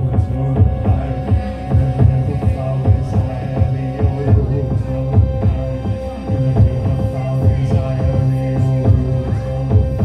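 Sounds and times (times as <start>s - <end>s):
electronic music with bass: 0.0s - 10.0s.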